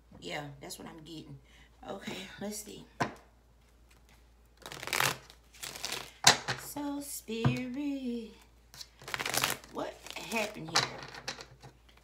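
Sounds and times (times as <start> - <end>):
cards being shuffled: 3.6 - 6.6, 8.7 - 12.0.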